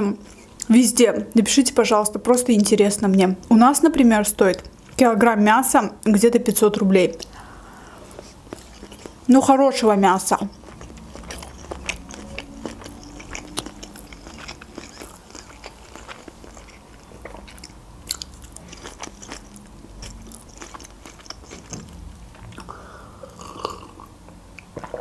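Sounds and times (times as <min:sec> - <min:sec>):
chewing with wet mouth sounds: 0:08.0 - 0:25.0.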